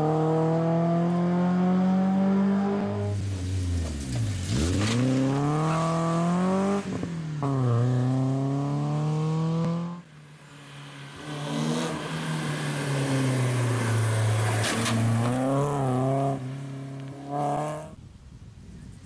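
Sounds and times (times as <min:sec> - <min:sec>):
rally car engine revving: 0:00.0 - 0:10.0, 0:11.1 - 0:18.0.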